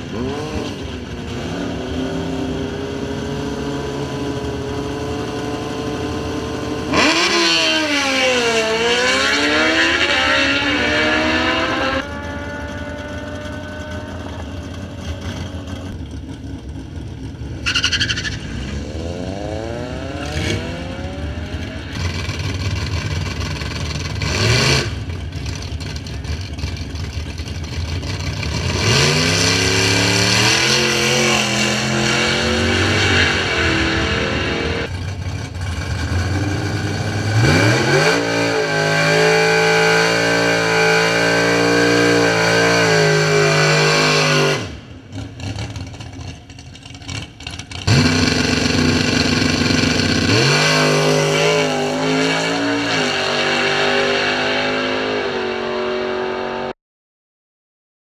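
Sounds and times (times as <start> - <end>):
drag car engines revving: 0.0 - 56.7.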